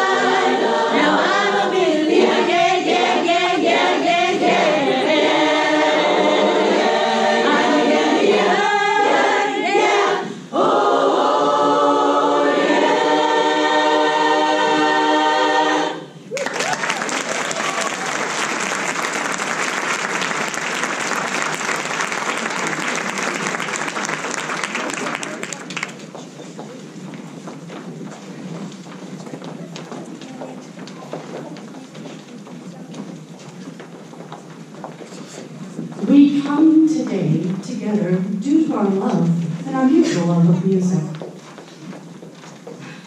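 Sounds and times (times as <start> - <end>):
women's chorus singing: 0.0 - 16.2
applause: 16.3 - 26.2.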